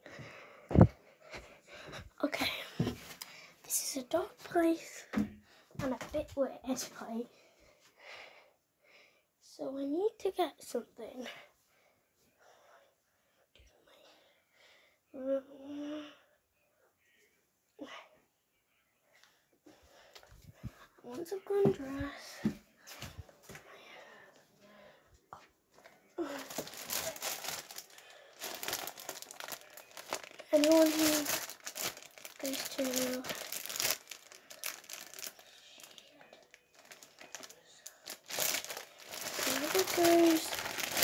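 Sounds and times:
rustling handling noise: 25.9 - 41.0
faint whispering: 35.1 - 38.3.

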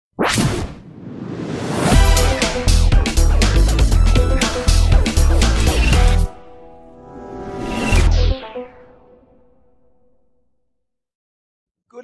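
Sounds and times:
whoosh with hit: 0.2 - 2.1
rising swell: 1.0 - 10.1
intro music: 1.5 - 10.2.

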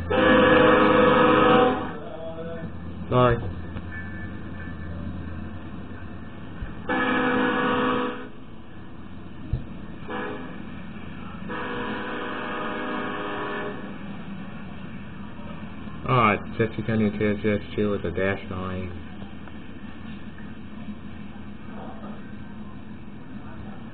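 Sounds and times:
locomotive air horn blasts: 0.0 - 2.2, 6.8 - 8.4, 10.0 - 14.1
low rumble of approaching train: 0.0 - 23.9.

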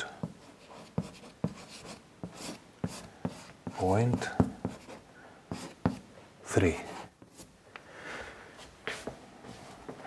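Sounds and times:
chalk tapping on board: 0.2 - 4.9, 5.5 - 6.0
chalk scratching on blackboard: 0.2 - 6.0.

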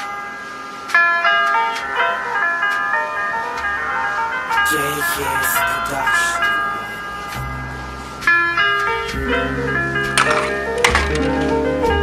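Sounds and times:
low bass line: 5.2 - 10.2.

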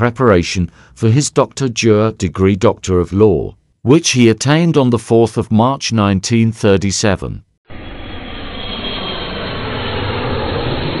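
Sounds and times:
loud mechanical drone: 7.7 - 11.0.

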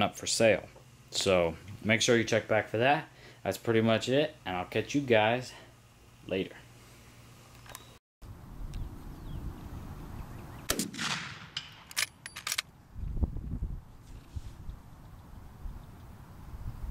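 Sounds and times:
gunshot with long echo: 10.7 - 11.9
sharp cracks: 10.7 - 12.7.

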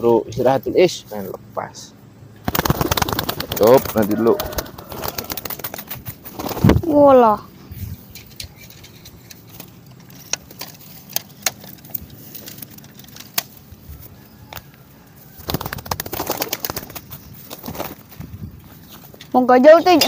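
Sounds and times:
wings flapping: 2.4 - 7.0, 15.3 - 18.4
pigeon clicks: 2.5 - 6.7.

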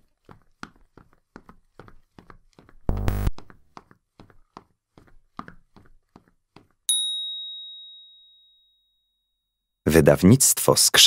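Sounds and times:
bright bell-like ding: 6.9 - 9.4.

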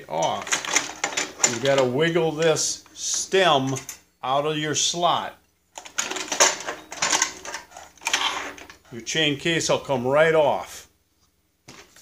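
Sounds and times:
metallic clattering and rattling: 0.2 - 4.1, 5.8 - 8.9.

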